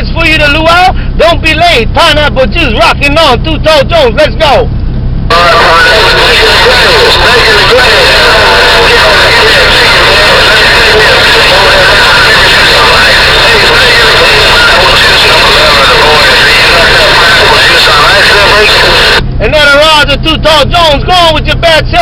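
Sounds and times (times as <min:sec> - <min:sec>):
garbled radio voices: 0:00.0 - 0:04.7, 0:05.3 - 0:22.0
whining tones: 0:04.7 - 0:19.4
radio static: 0:05.3 - 0:19.7.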